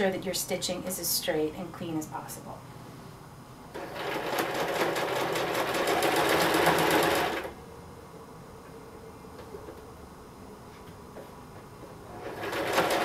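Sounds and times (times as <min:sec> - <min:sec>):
sewing machine stitching: 0:03.7 - 0:07.6, 0:12.1 - 0:13.0.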